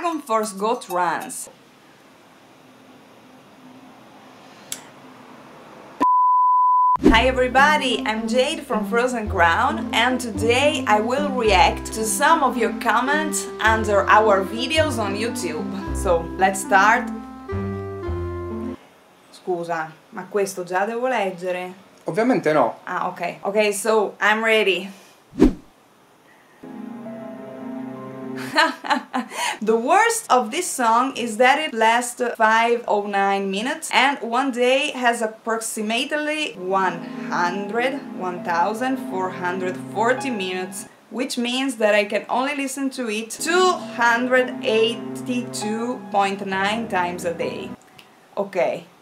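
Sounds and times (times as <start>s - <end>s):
censor bleep tone: 6.0s - 7.0s
keyboard chord background music: 7.2s - 18.8s, 26.6s - 28.6s, 36.6s - 41.0s, 43.4s - 47.8s.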